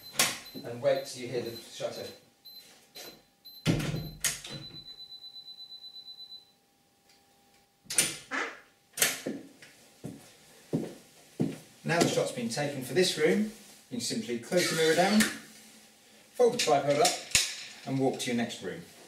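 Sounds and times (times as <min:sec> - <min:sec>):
footsteps on wooden floor: 0:10.0 - 0:12.2.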